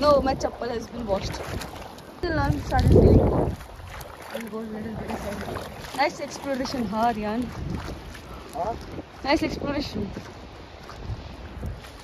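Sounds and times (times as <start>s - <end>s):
shallow running water: 0.0s - 12.0s
wind rumbling on microphone: 0.0s - 12.0s.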